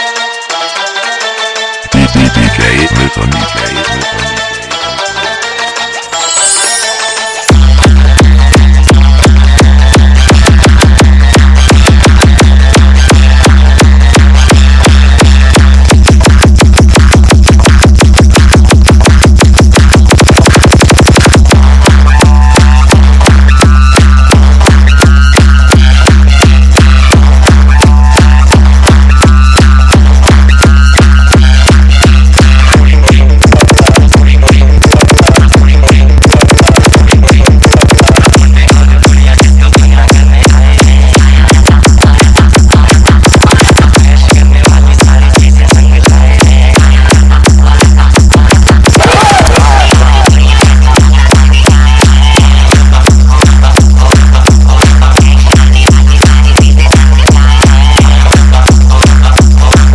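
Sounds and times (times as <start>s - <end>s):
electronic dance music: 0.0s - 59.9s.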